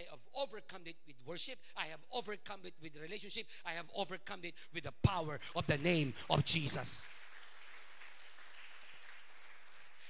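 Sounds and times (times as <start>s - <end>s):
crowd applauding: 5.6s - 10.0s.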